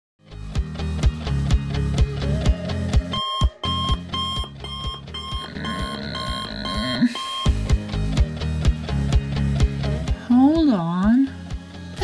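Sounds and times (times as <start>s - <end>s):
music with a steady beat: 0.3s - 6.4s, 7.1s - 12.0s
digital alarm clock beeping: 3.1s - 7.7s.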